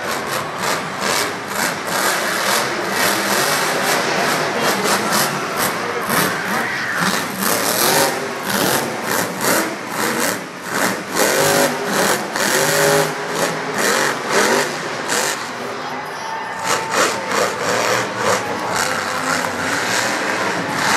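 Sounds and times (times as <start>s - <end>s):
monster truck engine revving: 0.0s - 20.9s.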